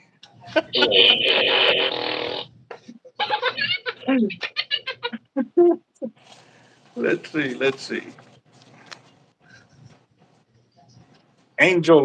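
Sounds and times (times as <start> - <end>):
man laughing: 0.6 - 2.1.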